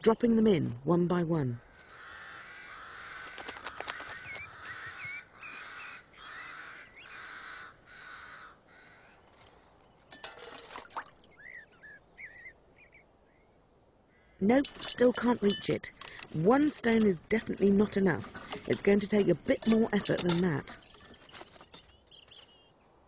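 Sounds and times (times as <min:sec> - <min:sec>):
ravens calling harshly: 0:01.5 - 0:09.2.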